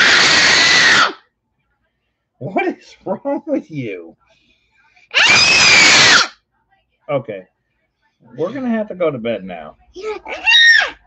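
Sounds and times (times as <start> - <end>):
child screaming: 0.0 - 1.2, 5.1 - 6.4, 10.0 - 11.0.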